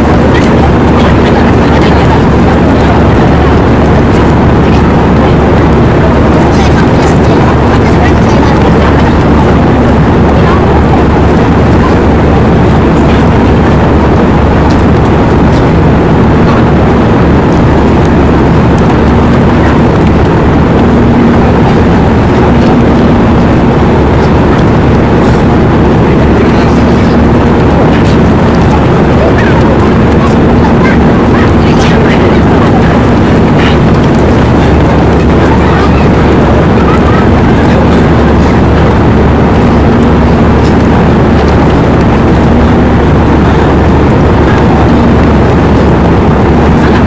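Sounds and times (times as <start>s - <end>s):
airliner cabin roar: 0.0s - 47.0s
low engine hum: 0.0s - 47.0s.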